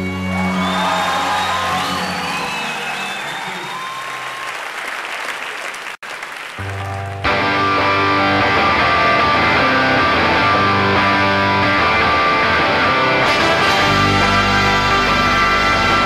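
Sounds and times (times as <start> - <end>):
band playing: 0.0 - 2.5, 6.6 - 16.0
audience applause and whistles: 0.0 - 7.2.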